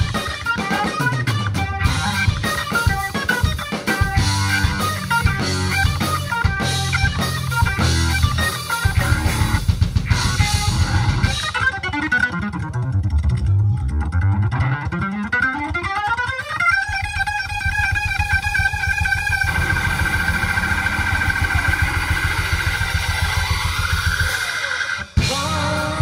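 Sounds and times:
rock band playing: 0.0 - 26.0.

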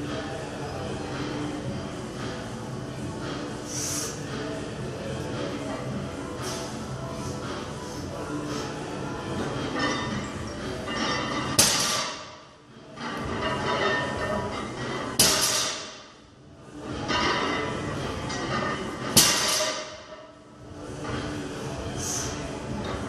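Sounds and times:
weight plates clanking: 13.0 - 16.0.

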